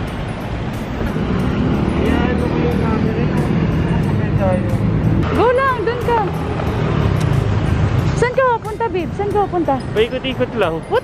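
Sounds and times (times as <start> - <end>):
wind and road noise rumble: 0.0 - 11.0.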